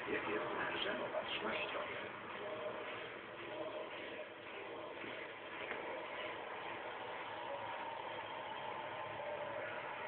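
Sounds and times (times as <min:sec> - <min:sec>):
muffled television sound: 0:00.0 - 0:10.0.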